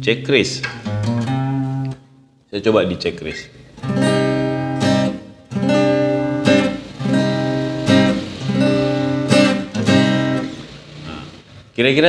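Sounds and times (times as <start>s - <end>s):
acoustic guitar chords strummed: 0.6s - 2.1s, 3.8s - 11.6s.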